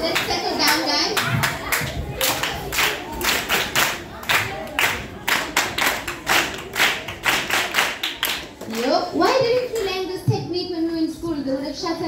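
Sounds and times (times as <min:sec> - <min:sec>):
children clapping in rhythm: 0:00.0 - 0:09.9.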